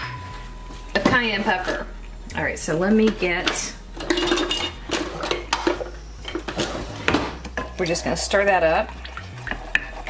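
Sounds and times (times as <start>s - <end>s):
kitchen utensils clinking: 2.7s - 10.0s
wooden spoon stirring in glass cup: 8.9s - 10.0s.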